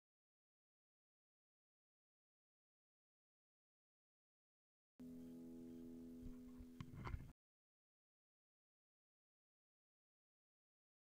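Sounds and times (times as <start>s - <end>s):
faint steady hum: 5.0s - 7.3s
soft clicks and knocks: 6.2s - 7.3s.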